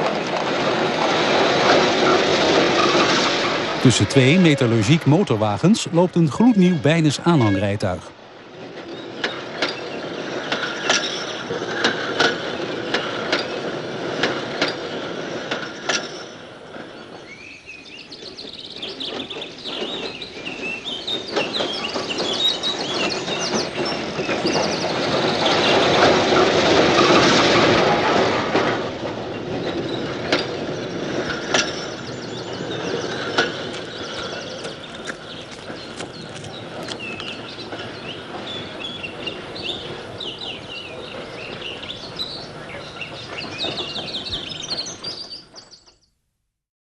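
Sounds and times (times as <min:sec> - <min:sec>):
electric tram rumbling: 0:00.0 - 0:45.8
wheels clicking on track: 0:00.0 - 0:45.8
birds chirping: 0:03.8 - 0:08.1, 0:28.6 - 0:46.0.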